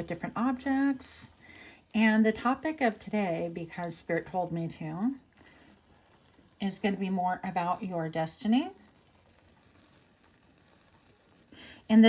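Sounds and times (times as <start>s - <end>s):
charcoal disc fizzing: 0.0s - 12.0s.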